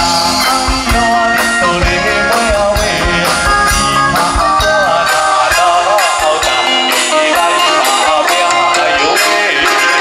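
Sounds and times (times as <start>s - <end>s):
live band playing: 0.0s - 10.0s
man singing into a microphone: 0.0s - 10.0s.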